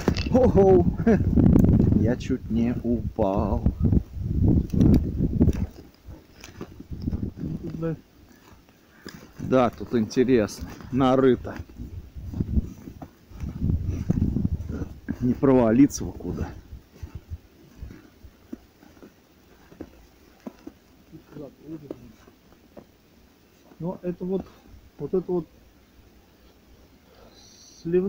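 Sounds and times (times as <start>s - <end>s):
wind rumble on microphone: 0.0s - 8.0s, 10.4s - 18.4s
footsteps in snow: 1.6s - 27.0s
scuffing and rustling through brush: 3.3s - 27.0s.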